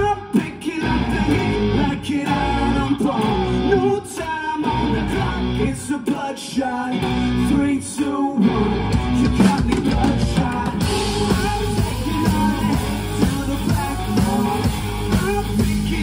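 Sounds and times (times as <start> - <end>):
live rock band playing: 8.4 - 16.0.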